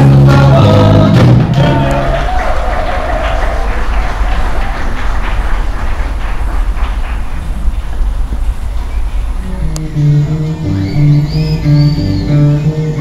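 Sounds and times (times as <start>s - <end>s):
street background rumble: 0.0s - 13.0s
background hiss: 3.0s - 13.0s.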